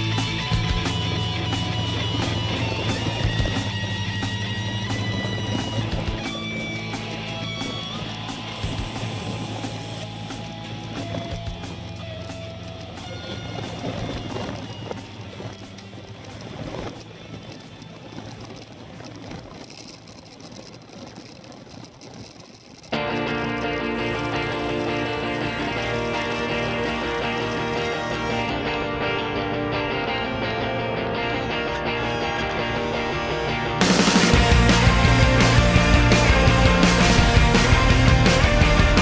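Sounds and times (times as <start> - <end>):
rock song with electric guitars: 0.0 - 13.2, 23.0 - 39.0.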